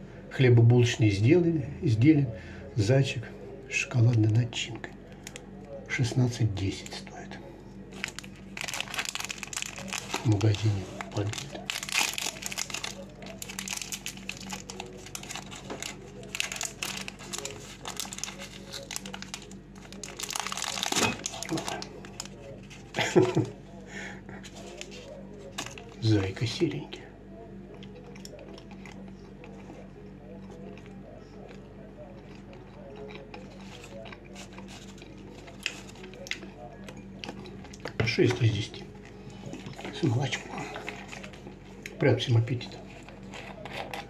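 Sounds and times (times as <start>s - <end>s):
steady low hum: 0.0s - 44.0s
person chewing: 7.8s - 23.4s, 27.7s - 38.0s
wrapper crinkling: 7.9s - 23.5s, 24.4s - 26.0s, 33.6s - 36.4s.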